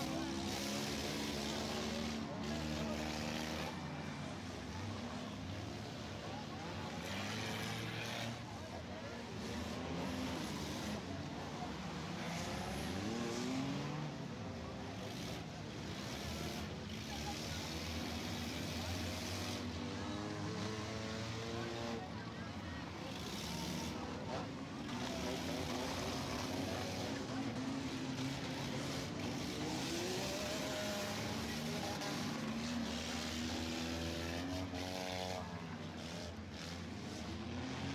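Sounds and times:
car engines revving: 0.0s - 37.9s.

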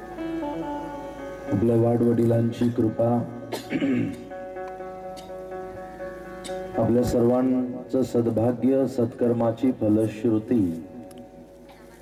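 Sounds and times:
background music with held drone: 0.0s - 12.0s
man clearing throat: 3.5s - 4.2s.

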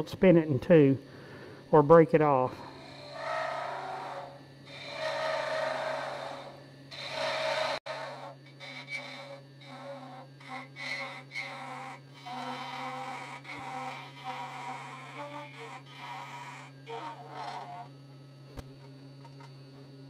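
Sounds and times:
wood lathe humming: 2.5s - 18.0s
cutter cutting spinning wood: 2.6s - 17.9s.

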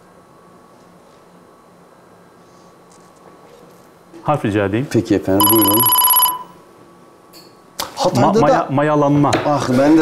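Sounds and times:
electronic beep: 5.4s - 6.6s.

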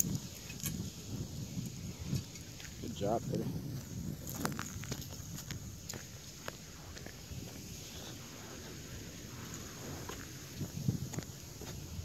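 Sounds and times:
footsteps walking outdoors: 0.0s - 12.0s.

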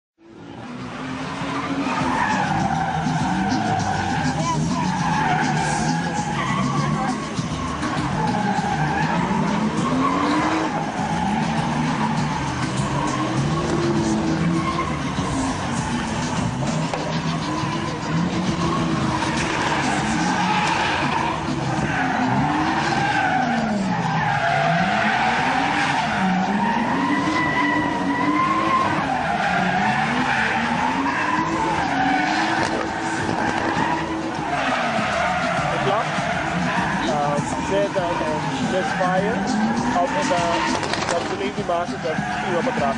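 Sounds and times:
car engine revving: 0.2s - 42.9s
tyres screeching: 0.7s - 42.9s.

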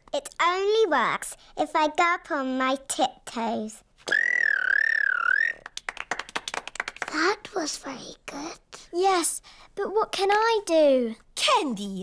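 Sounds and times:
high-pitched wavering squeal: 4.1s - 5.6s
children clapping: 5.5s - 7.2s.

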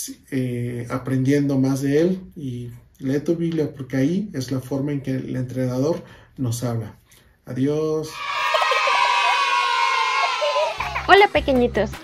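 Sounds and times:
children cheering and shouting: 8.0s - 12.0s.

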